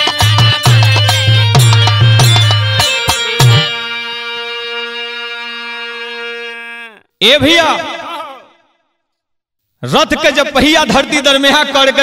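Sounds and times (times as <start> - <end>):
man talking: 6.5 - 8.6, 9.8 - 12.0.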